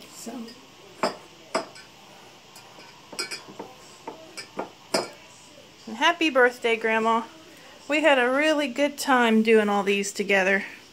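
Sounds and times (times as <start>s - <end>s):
ceramic mugs clinking on countertop: 0.4s - 5.2s.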